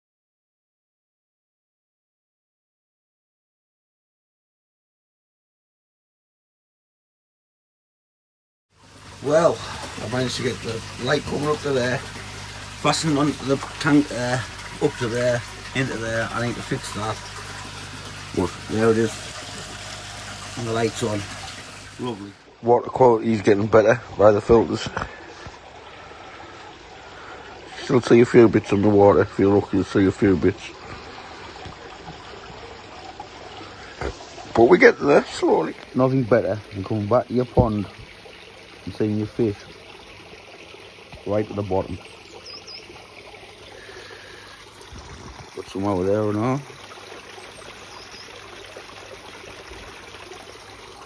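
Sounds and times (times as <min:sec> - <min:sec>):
pond water trickling: 0:08.7 - 0:51.0.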